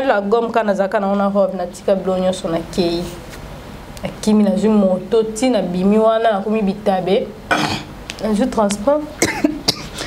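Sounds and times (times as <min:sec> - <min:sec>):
woman talking: 0:00.0 - 0:03.3, 0:04.0 - 0:07.4, 0:08.2 - 0:09.7
short sharp coughs: 0:07.5 - 0:07.9, 0:09.2 - 0:10.0.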